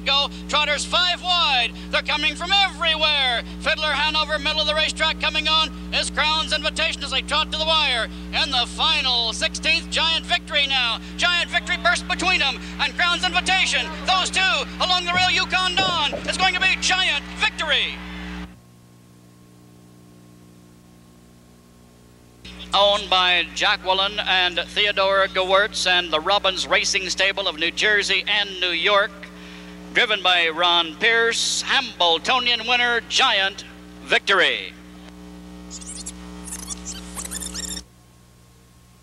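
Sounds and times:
electrical hum: 0:00.0 - 0:39.0
high squeaky chirps: 0:35.7 - 0:37.8.

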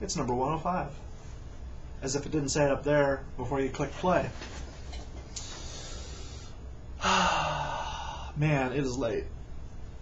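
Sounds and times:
man sighing: 0:07.0 - 0:08.4.

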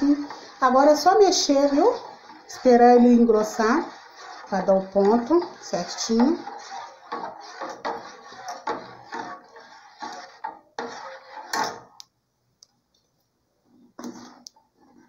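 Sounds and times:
metal spoon scraping saucepan: 0:00.0 - 0:12.0, 0:14.0 - 0:15.0.

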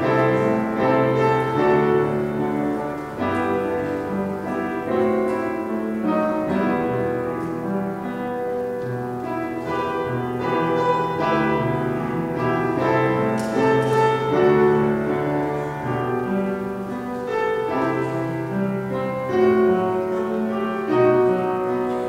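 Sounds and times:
slow piano music: 0:00.0 - 0:22.0.

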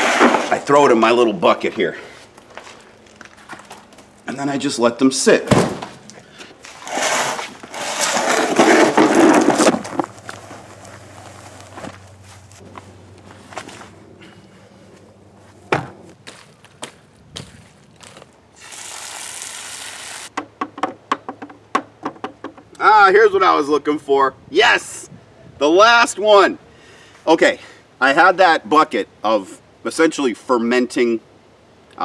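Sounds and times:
avocados sliding out: 0:00.0 - 0:00.7, 0:06.6 - 0:10.7
plastic bucket scraping: 0:00.0 - 0:00.7, 0:06.6 - 0:10.9.

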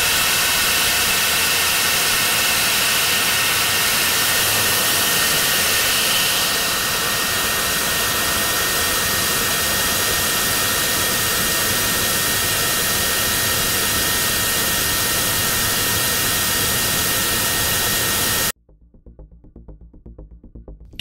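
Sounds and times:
rocket engine rushing with high whine: 0:00.0 - 0:18.6.

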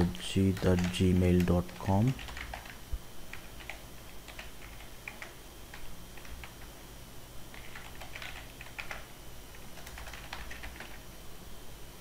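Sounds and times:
computer keyboard typing: 0:00.4 - 0:06.8, 0:07.5 - 0:11.0.

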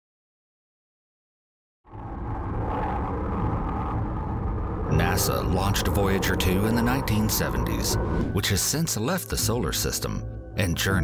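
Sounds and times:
rocket launch rumble: 0:01.9 - 0:08.4.

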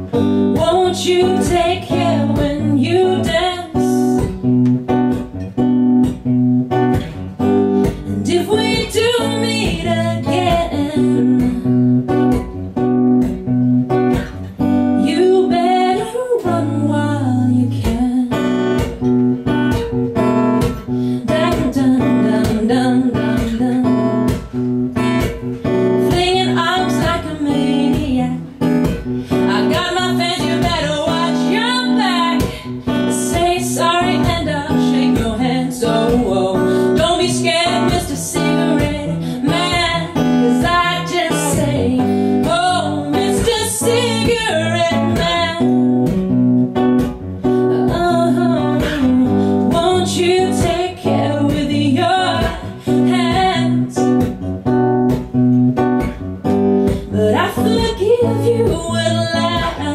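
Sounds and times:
woman singing: 0:00.0 - 0:05.4, 0:06.0 - 0:55.4, 0:56.0 - 0:59.9
acoustic guitar strumming: 0:00.0 - 0:16.9, 0:17.6 - 0:59.9.

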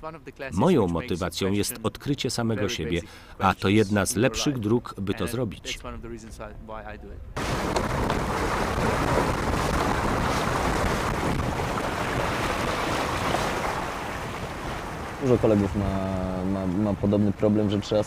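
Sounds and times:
wind on microphone: 0:07.1 - 0:16.2
water splashing along hull: 0:07.4 - 0:18.0.

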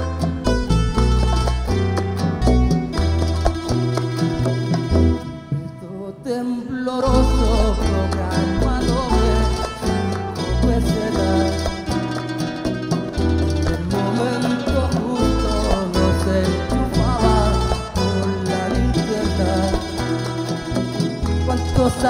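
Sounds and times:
deep bass line: 0:00.0 - 0:05.8, 0:07.1 - 0:22.0
hand drums: 0:00.0 - 0:05.8, 0:07.1 - 0:22.0
plucked and strummed guitars: 0:00.0 - 0:22.0.

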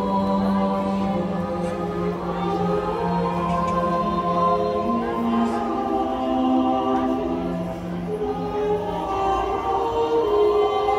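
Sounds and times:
choir-like voices holding notes: 0:00.0 - 0:10.9.

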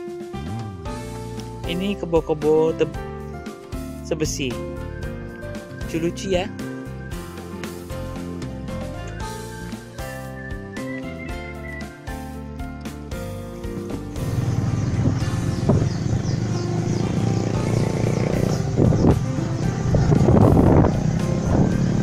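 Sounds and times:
background music: 0:00.0 - 0:22.0
motorbike engine on dirt track: 0:14.0 - 0:22.0.

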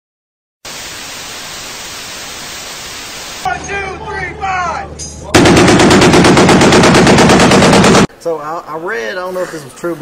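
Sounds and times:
television static hiss: 0:00.7 - 0:03.5.

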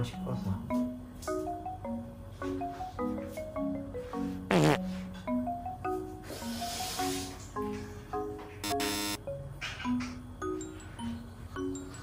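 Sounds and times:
marimba-like background music: 0:00.0 - 0:12.0
short buzzy sound effect: 0:04.5 - 0:04.8, 0:08.6 - 0:09.2.

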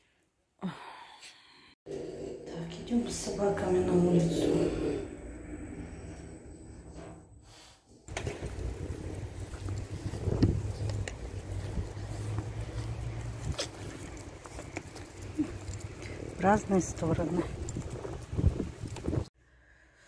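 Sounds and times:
wind rumbling on microphone: 0:08.1 - 0:19.3.

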